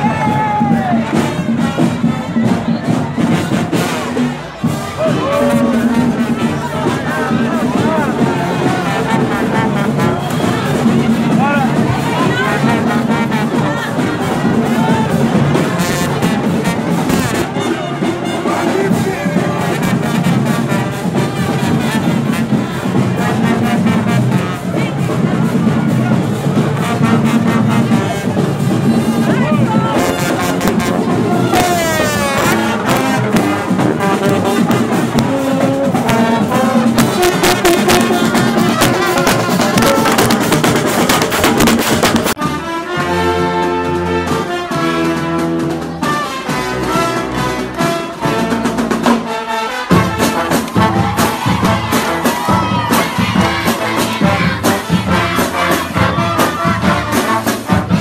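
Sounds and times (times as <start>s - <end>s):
marching band brass and percussion: 0.0s - 58.0s.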